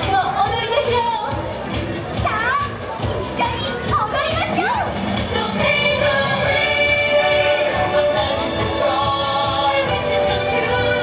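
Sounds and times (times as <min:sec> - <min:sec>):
crowd voices: 0:00.0 - 0:11.0
parade music playing: 0:00.0 - 0:11.0.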